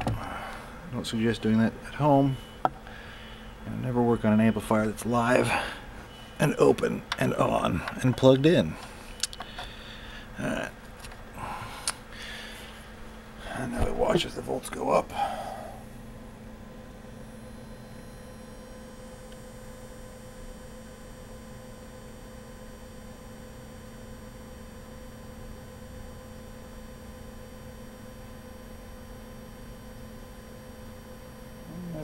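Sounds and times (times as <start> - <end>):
faint steady tones: 0.0 - 10.7
electrical hum: 0.0 - 32.0.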